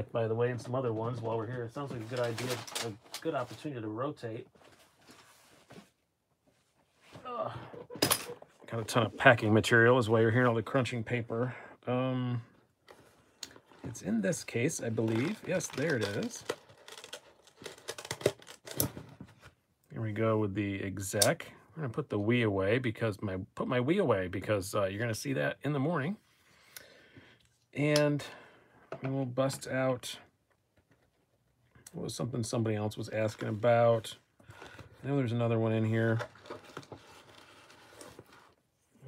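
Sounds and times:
man speaking: 0.0s - 4.5s, 8.7s - 12.5s, 13.9s - 16.5s
packing paper crinkling: 1.8s - 3.6s, 14.6s - 18.8s.

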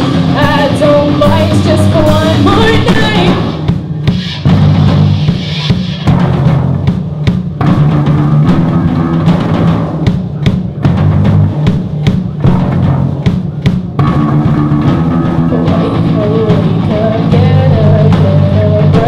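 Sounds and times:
bass guitar line: 0.0s - 19.0s
drum kit: 0.0s - 19.0s.

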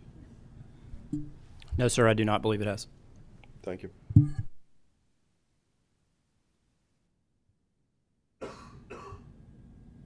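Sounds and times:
person coughing: 8.4s - 9.3s.

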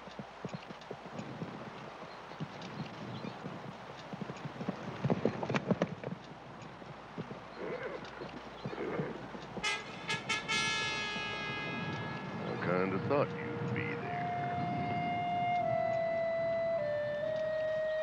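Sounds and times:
horse stamping: 0.0s - 13.1s
horse hooves clopping on dirt: 0.0s - 18.0s
short calls: 7.6s - 18.0s
held brass-like musical note: 9.6s - 17.1s.

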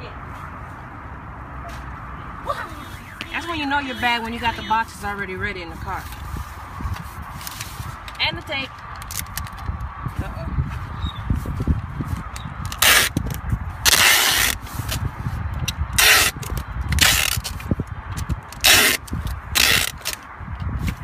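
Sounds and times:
packing tape ripping: 8.9s - 9.6s, 12.7s - 14.6s, 16.0s - 17.6s, 18.5s - 20.2s.

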